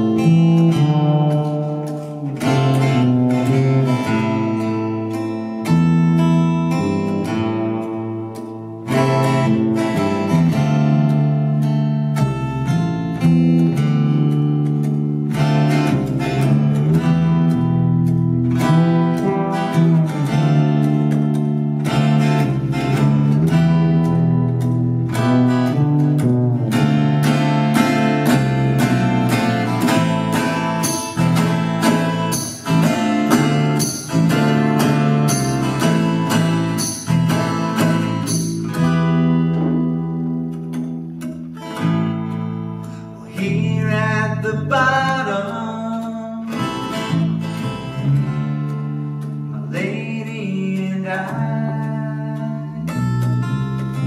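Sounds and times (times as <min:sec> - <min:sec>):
electric bass line: 0:00.0 - 0:54.0
strummed acoustic guitar: 0:00.0 - 0:54.0
congas struck by hand and stick: 0:17.9 - 0:39.9.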